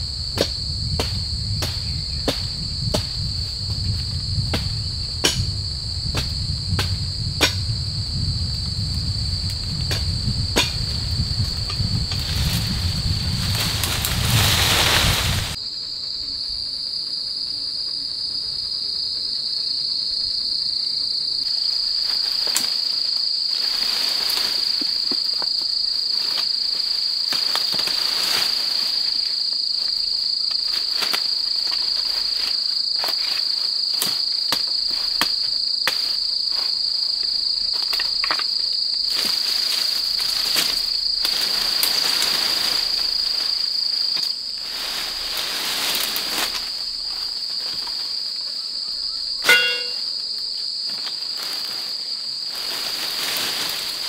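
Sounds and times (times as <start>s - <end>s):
dry leaves and twigs crackling underfoot: 0.0s - 15.6s, 21.5s - 54.0s
insects droning: 0.0s - 54.0s.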